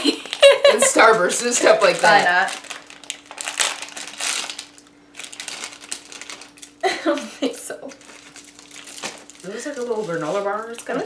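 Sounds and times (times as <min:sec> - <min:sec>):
plastic wrapper crinkling: 0:00.0 - 0:06.8, 0:07.9 - 0:11.0.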